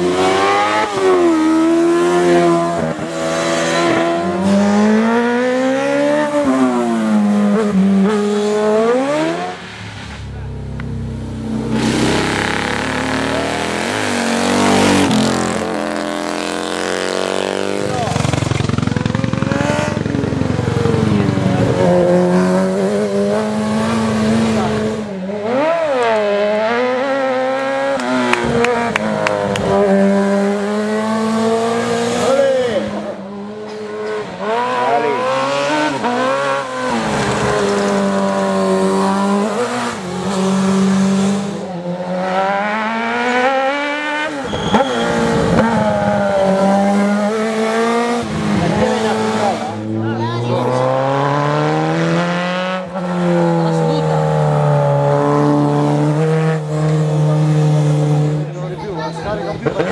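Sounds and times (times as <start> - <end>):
racing engines revving past: 0.0 - 59.9.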